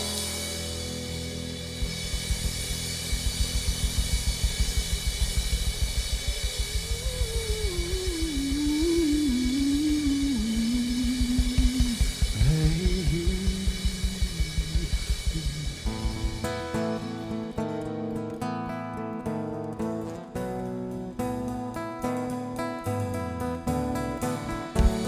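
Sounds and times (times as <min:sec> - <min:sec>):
drum kit: 0:00.0 - 0:18.5, 0:19.7 - 0:25.0
electric bass: 0:00.0 - 0:25.0
electric guitar: 0:00.0 - 0:25.0.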